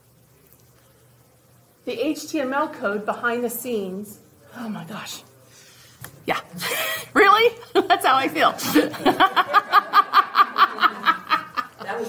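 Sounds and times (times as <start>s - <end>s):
woman laughing: 8.6s - 12.0s.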